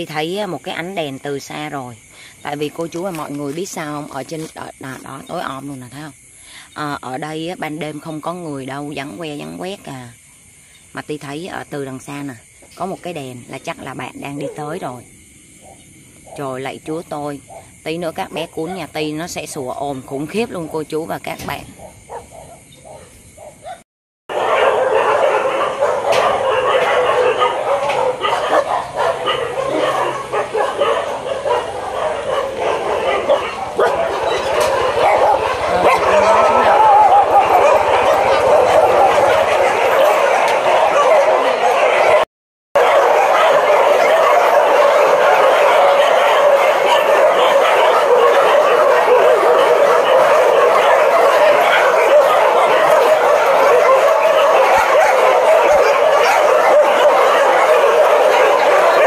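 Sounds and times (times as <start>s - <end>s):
dogs barking and yelping: 11.8s - 59.0s.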